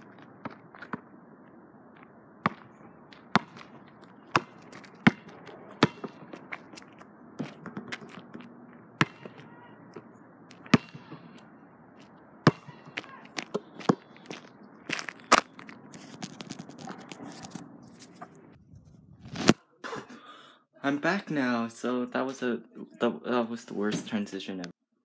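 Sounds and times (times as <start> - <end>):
basketball bouncing on asphalt: 0.0 - 17.3.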